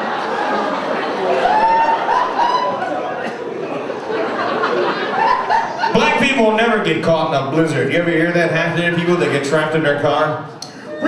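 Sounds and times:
people laughing: 0.0s - 6.8s
man speaking through microphone: 5.9s - 10.6s.

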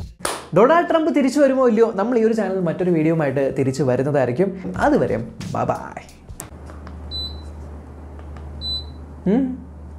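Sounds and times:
low steady hum: 2.4s - 9.9s.

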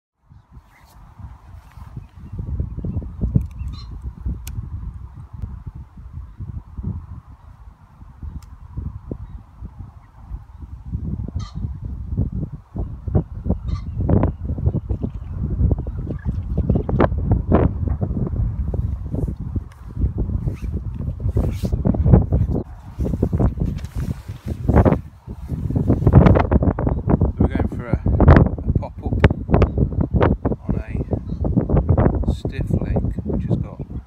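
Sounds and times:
wind buffeting microphone: 0.2s - 34.0s.

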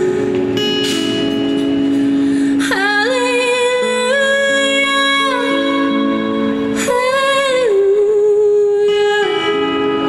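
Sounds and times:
guitar notes ringing: 0.0s - 10.0s
woman singing: 2.2s - 10.0s.

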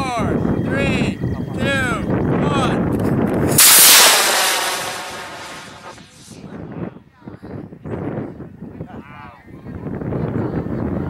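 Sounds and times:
rocket motor exhaust rush: 3.5s - 6.4s.

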